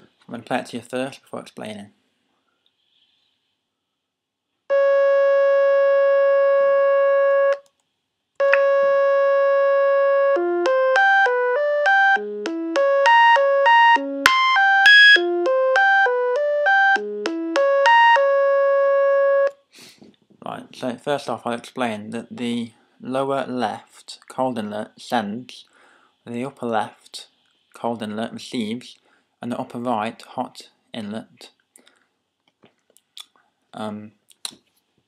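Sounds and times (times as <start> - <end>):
buzzy synthesizer tone: 8.4 - 19.5.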